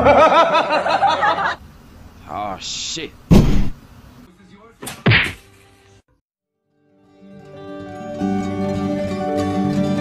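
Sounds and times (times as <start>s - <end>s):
sharp whack: 3.3s - 3.8s, 4.8s - 5.4s.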